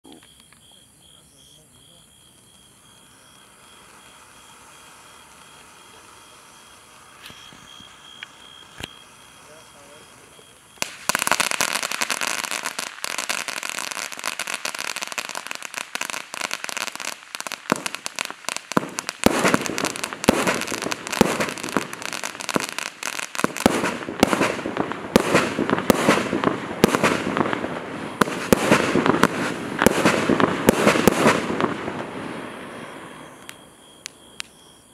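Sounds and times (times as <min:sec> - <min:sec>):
fountain firework hissing and crackling: 0:02.7 - 0:33.5.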